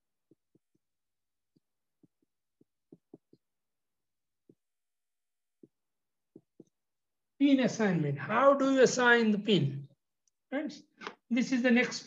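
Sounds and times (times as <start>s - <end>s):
marker strokes on whiteboard: 0.0s - 6.8s.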